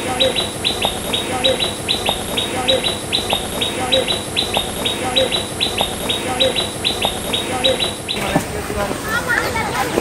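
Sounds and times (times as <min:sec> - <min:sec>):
small birds chirping: 0:00.0 - 0:09.8.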